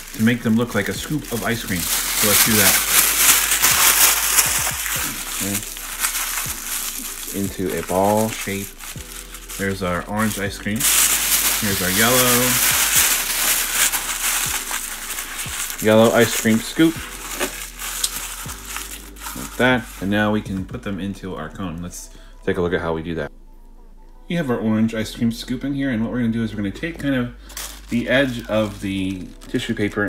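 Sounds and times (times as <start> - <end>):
tissue paper crumpling: 0.0 - 20.7, 27.4 - 30.0.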